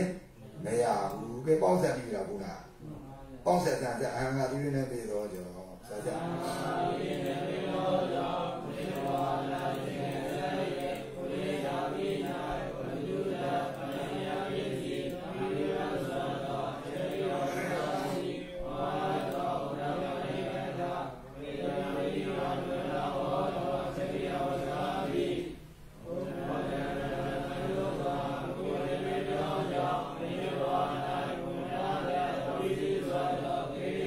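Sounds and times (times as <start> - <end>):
voices chanting: 5.8 - 34.0.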